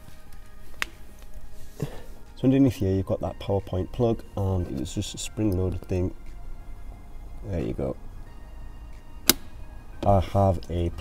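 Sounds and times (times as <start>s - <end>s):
faint background music: 0.0s - 11.0s
power socket cover click: 9.2s - 9.5s.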